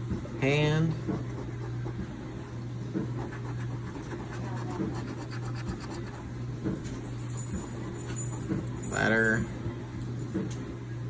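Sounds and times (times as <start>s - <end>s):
steady low hum: 0.0s - 11.0s
coin scratching a lottery ticket: 3.2s - 6.3s.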